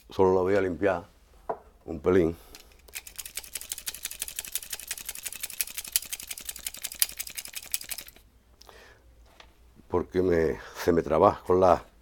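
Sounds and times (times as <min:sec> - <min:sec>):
pruning shears clicking: 0:02.6 - 0:08.2.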